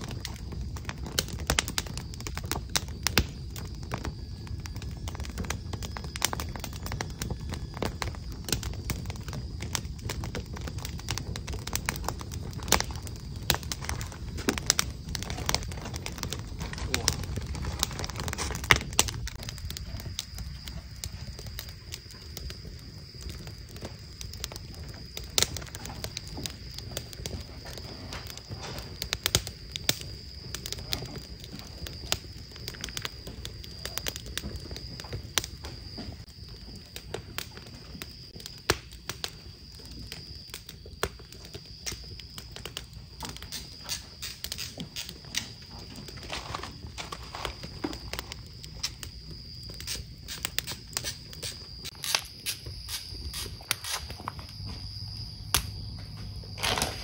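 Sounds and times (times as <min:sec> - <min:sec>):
wood fire crackling: 0:00.0 - 0:57.0.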